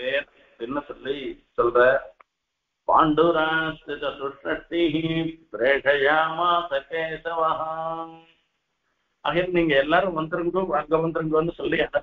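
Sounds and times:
man chanting: 0.0 - 2.1, 2.9 - 8.2, 9.3 - 12.0.

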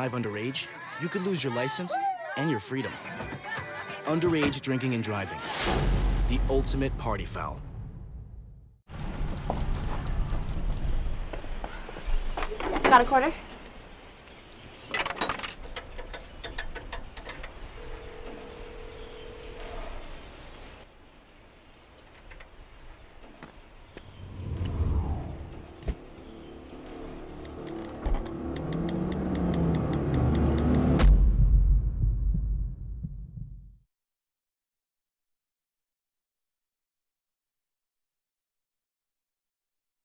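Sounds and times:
steady phone tone: 17.7 - 20.2
low thumps: 29.6 - 33.8
low booming rumble: 31.0 - 33.8.

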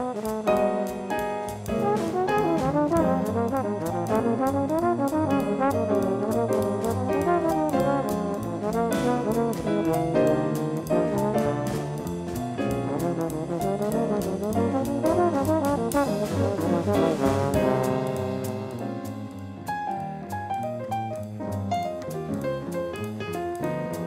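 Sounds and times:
slide trombone jazz line: 0.0 - 19.4
drum kit with cymbal strokes: 0.0 - 24.0.

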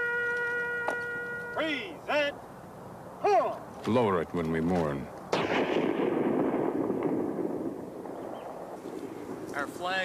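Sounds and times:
rifle volley echoing: 5.3 - 9.5.

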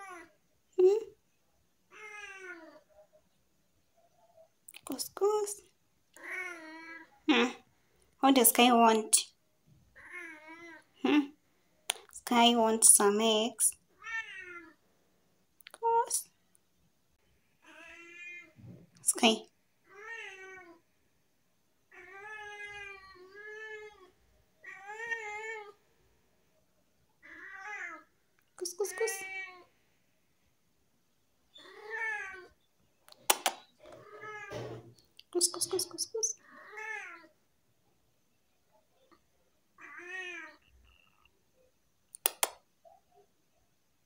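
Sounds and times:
cat meowing: 1.9 - 2.9, 6.2 - 7.2, 14.0 - 14.8, 17.6 - 18.6, 19.9 - 20.8, 21.9 - 25.8, 27.2 - 28.1, 31.6 - 32.6, 33.9 - 34.8, 36.4 - 37.3, 39.8 - 41.3.

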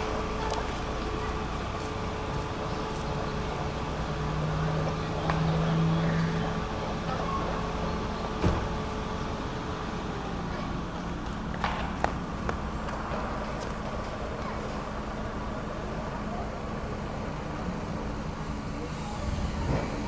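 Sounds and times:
vehicle engine hum: 0.0 - 20.0.

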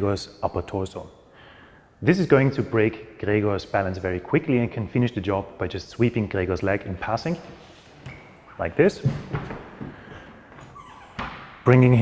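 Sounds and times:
short squeak: 10.7 - 11.4.

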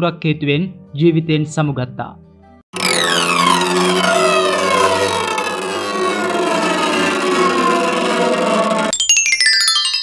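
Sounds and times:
tones sliding down in pitch: 2.8 - 8.9.

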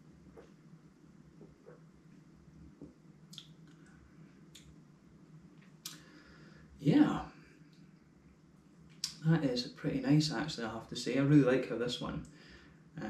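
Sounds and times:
mouth clicks and lip smacks: 2.8 - 3.8, 5.8 - 6.1.

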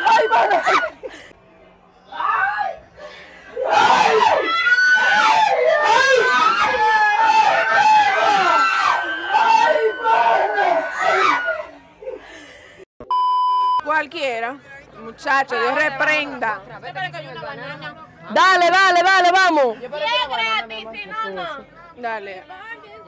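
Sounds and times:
women screaming and laughing: 0.0 - 1.4, 2.5 - 12.4
bleep tone: 8.4 - 10.6, 13.0 - 13.8.

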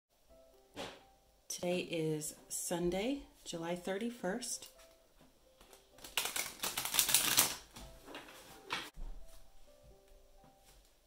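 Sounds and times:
cards being shuffled: 5.6 - 8.9.

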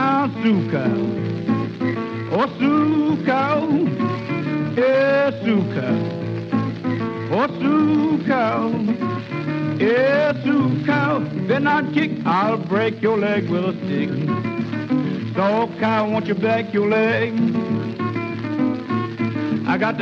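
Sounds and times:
country blues record: 0.0 - 20.0.

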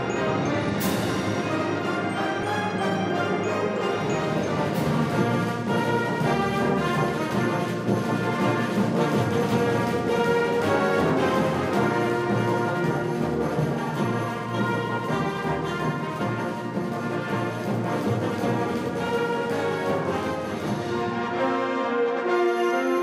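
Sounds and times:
wind band music with brass: 0.0 - 23.0.

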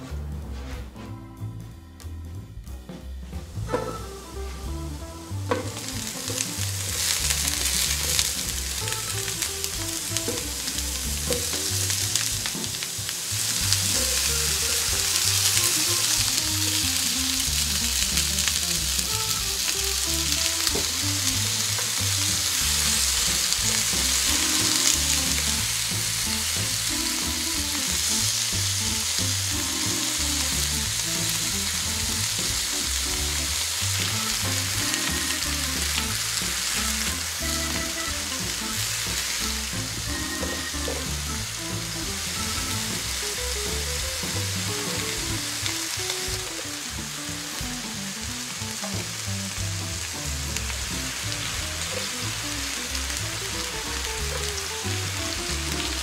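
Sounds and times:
food sizzling in oil: 4.9 - 56.0.

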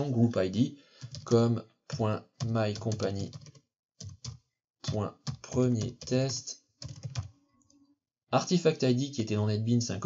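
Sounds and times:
person speaking: 0.0 - 3.4, 4.8 - 7.3
keyboard typing: 0.9 - 7.8.

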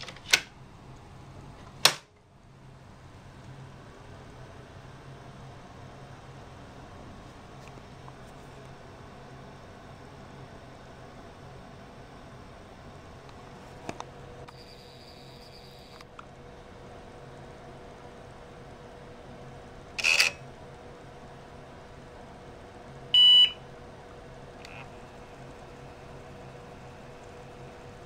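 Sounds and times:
computer fan hum: 0.0 - 28.0
short computer beep: 14.5 - 15.9, 23.2 - 23.6.

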